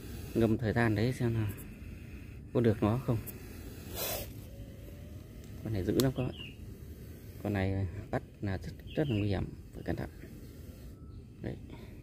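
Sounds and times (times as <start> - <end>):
snake hissing: 0.0 - 12.0.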